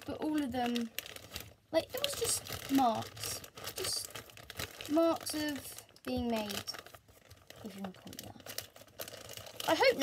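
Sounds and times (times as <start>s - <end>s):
packaging rustling and crinkling: 0.0s - 10.0s.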